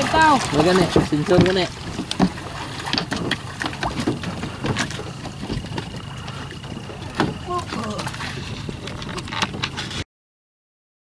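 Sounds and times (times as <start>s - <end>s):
boat engine idling: 0.0s - 10.0s
wood knocking against hull: 0.0s - 10.0s.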